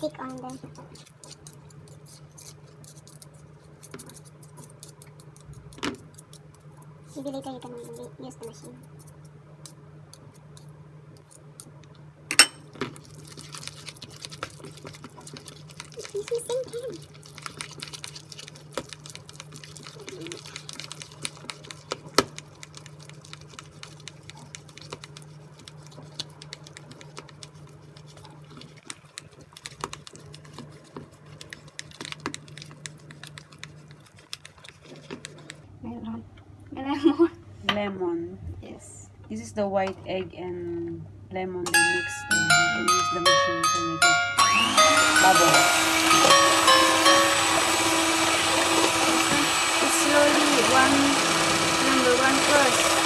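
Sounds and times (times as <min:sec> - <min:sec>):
whisk clicking against bowl: 0:13.4 - 0:35.6.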